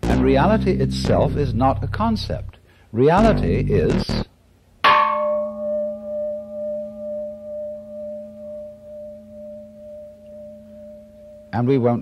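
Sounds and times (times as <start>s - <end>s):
bell-like ringing tone: 4.9s - 11.7s.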